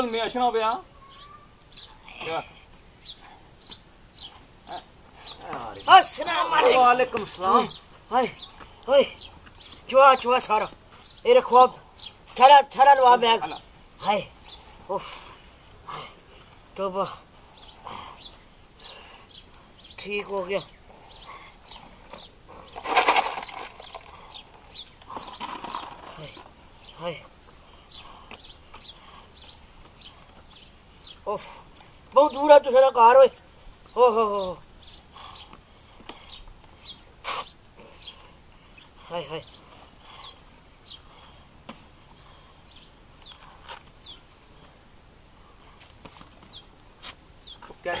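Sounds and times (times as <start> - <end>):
small bird chirping: 0.0 - 44.3, 45.5 - 48.0
voice-like bird call: 0.7 - 2.4.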